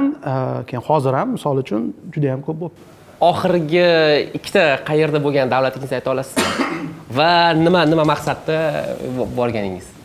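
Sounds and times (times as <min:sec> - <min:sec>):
man speaking: 0:00.0 - 0:10.0
cough: 0:06.4 - 0:07.0.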